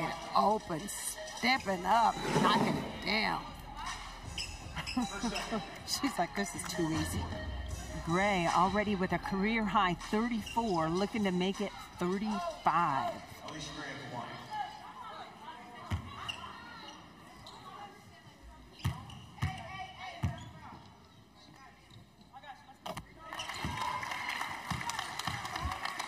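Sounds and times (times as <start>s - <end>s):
faint arena voices: 0.0s - 26.0s
crowd cheering: 23.3s - 26.0s.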